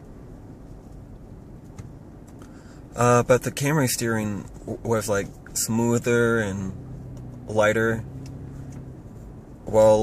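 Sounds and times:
car cabin hum while cruising: 0:00.0 - 0:10.0.

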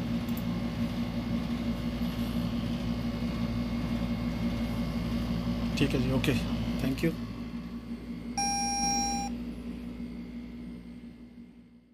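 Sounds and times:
car warning chime beep: 0:08.4 - 0:09.3.

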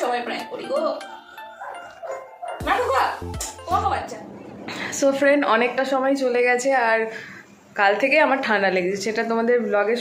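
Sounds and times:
quiet background music: 0:00.0 - 0:10.0
dog yelp: 0:01.6 - 0:02.7
dog barking: 0:01.6 - 0:02.8.

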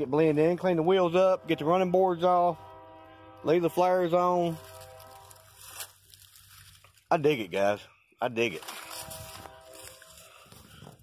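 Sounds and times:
low steady hum: 0:00.1 - 0:07.1.

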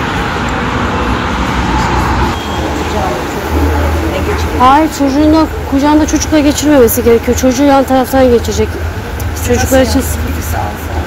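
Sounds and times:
road traffic rumble: 0:00.0 - 0:11.0
faint voices: 0:01.7 - 0:11.0.

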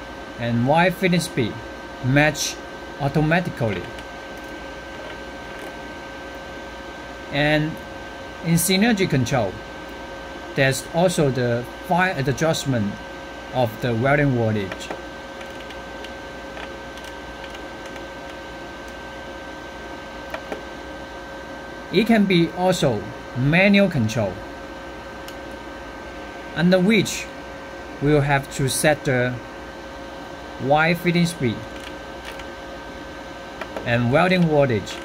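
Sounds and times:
cooling fan running: 0:00.0 - 0:35.0
faint high whine: 0:00.0 - 0:35.0
welder humming: 0:00.0 - 0:35.0.

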